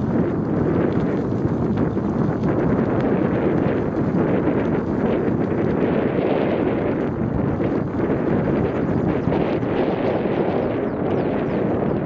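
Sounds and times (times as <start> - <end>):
bicycle tyres rolling on sand: 0.0 - 12.0
wind rumble on microphone: 0.0 - 12.0.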